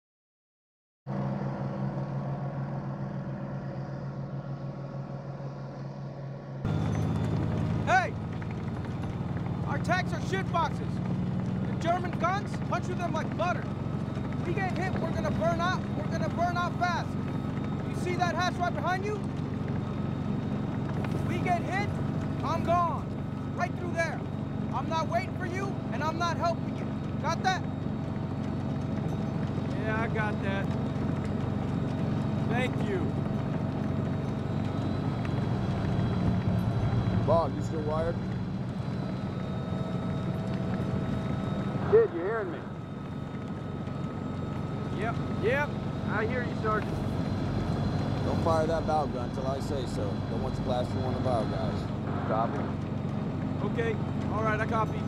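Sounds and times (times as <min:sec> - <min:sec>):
army trucks and tank engines droning: 0:01.1 - 0:55.0
close tank engine rumble: 0:01.2 - 0:55.0
rapid track clatter: 0:06.7 - 0:55.0
man speaking: 0:14.4 - 0:17.1, 0:32.5 - 0:33.1, 0:41.8 - 0:42.7.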